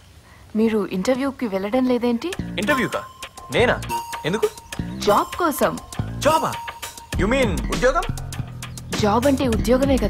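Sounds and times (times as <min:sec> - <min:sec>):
film background score: 0:01.3 - 0:10.0
man and woman talking: 0:02.3 - 0:08.1
thin high tone: 0:02.6 - 0:07.2.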